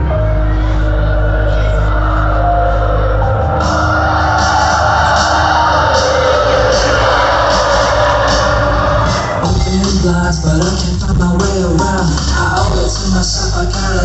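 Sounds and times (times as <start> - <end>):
heavy bass line: 0.0 - 14.0
loud live music through speakers: 0.0 - 14.0.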